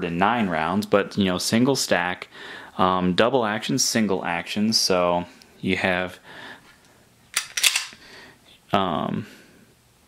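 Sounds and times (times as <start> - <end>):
pistol action clicking: 7.4 - 8.0.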